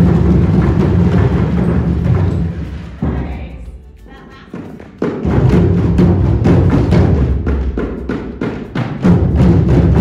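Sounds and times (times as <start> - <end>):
group hand drumming: 0.0 - 10.0.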